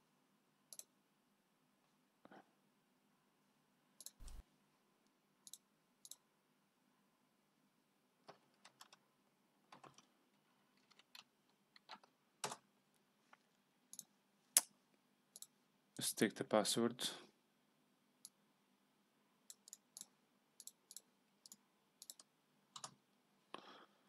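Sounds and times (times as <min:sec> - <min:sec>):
mouse and keyboard clicks: 0:04.0 - 0:04.4, 0:19.5 - 0:23.0.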